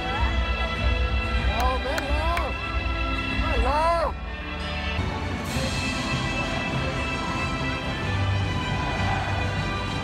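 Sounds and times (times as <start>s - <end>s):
bass-heavy music over loudspeakers: 0.0s - 10.0s.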